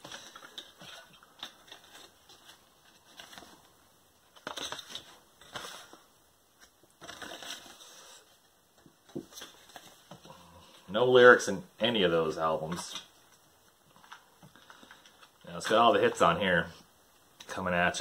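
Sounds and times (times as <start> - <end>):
paper rustling: 0.0 - 3.7, 4.3 - 10.4.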